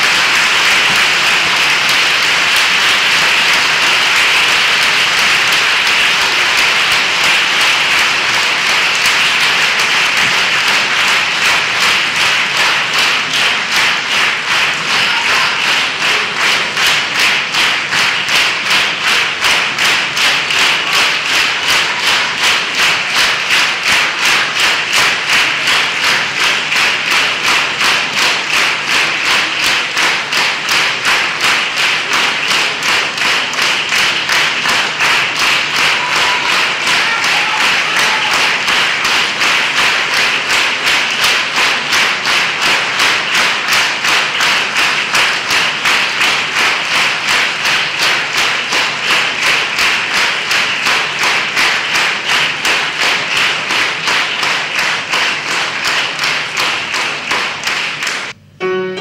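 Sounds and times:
audience applauding: 0.0s - 58.4s.

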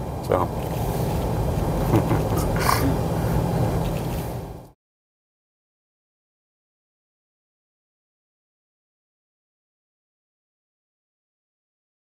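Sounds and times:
car road and engine hum: 0.0s - 4.7s.

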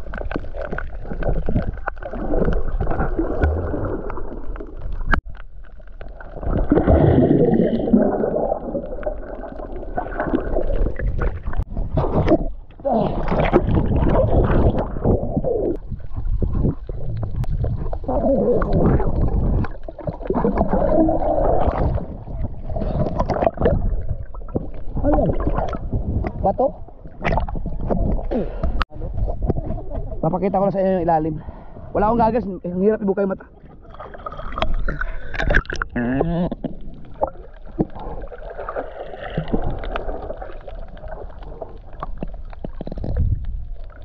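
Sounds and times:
underwater water sloshing: 0.0s - 44.0s.

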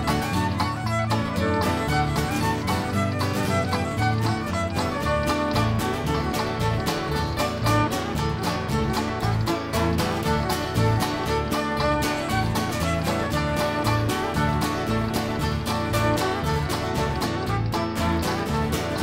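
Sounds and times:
band playing lively dance tune: 0.0s - 19.0s.

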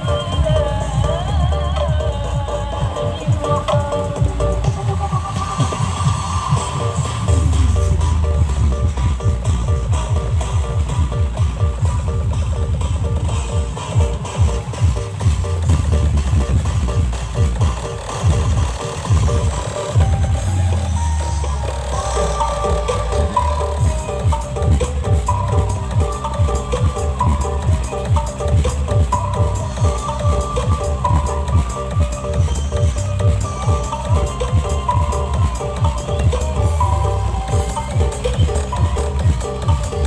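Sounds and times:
loud dance music: 0.0s - 40.0s.

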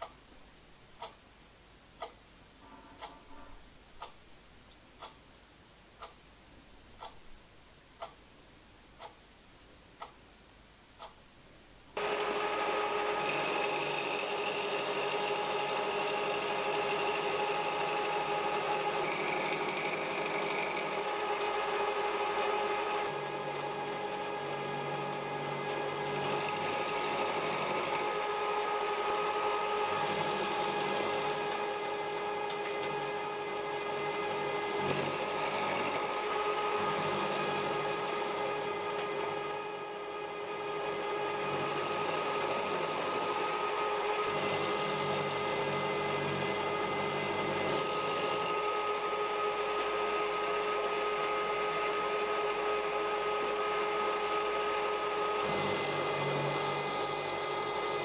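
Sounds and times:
end mill cutting metal: 12.0s - 58.0s
motor and spindle whine: 12.0s - 58.0s.

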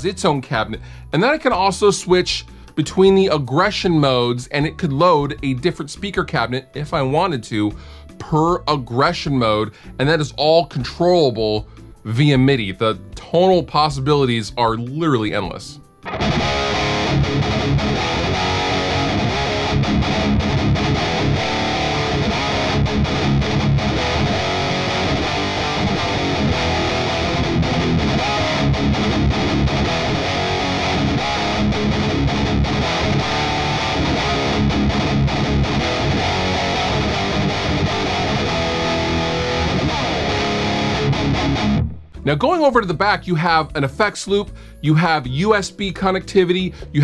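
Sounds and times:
distorted electric guitar riff: 16.0s - 42.3s.

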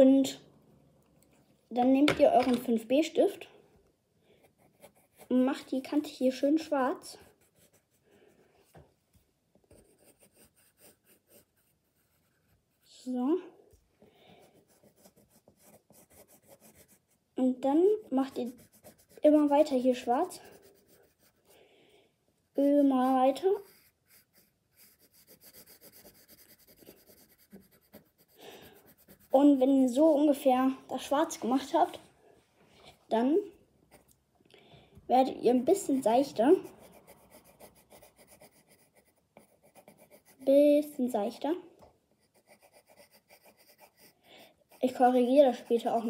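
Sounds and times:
pencil scratching on paper: 4.4s - 8.4s, 9.7s - 12.9s, 14.3s - 21.6s, 22.4s - 30.4s, 35.2s - 41.4s, 42.2s - 46.0s.

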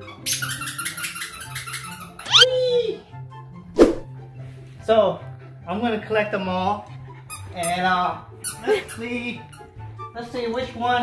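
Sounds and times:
squeaky dog toy squeaking: 0.1s - 2.5s, 7.3s - 9.8s.

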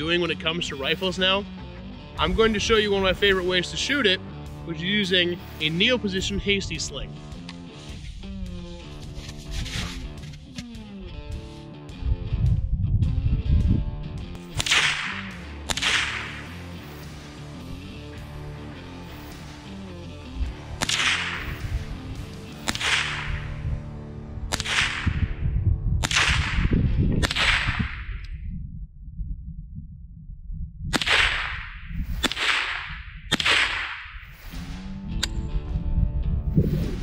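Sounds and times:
rifle shots: 14.4s - 17.2s, 20.8s - 23.6s, 24.5s - 25.3s, 26.0s - 28.1s, 30.9s - 34.2s.

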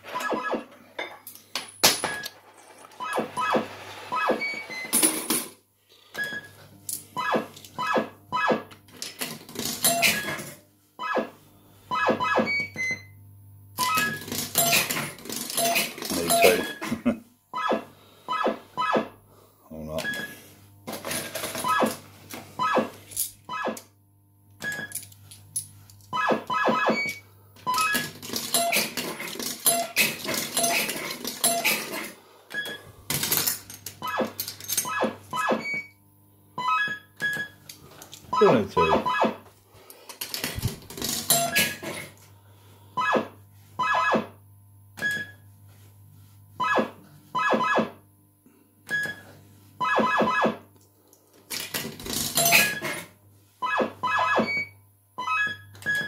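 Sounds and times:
fruit machine electronic beeps: 0.1s - 0.7s, 3.0s - 5.0s, 7.2s - 8.7s, 11.0s - 13.2s, 15.6s - 16.8s, 17.6s - 19.2s, 22.6s - 22.9s, 23.5s - 23.8s, 26.2s - 28.8s, 34.0s - 36.0s, 36.6s - 37.6s, 38.3s - 39.4s, 43.0s - 44.4s, 46.6s - 48.0s, 49.8s - 50.6s, 53.6s - 56.0s.

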